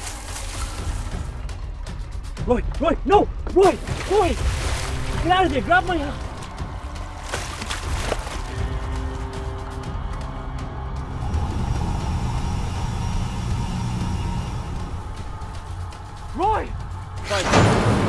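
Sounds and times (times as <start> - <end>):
low rumbling music drone: 0.0 - 18.0.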